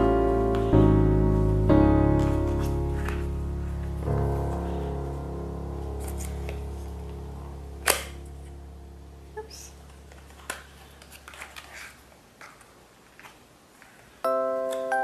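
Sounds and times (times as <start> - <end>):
piano background music: 0.0 - 11.0, 14.2 - 15.0.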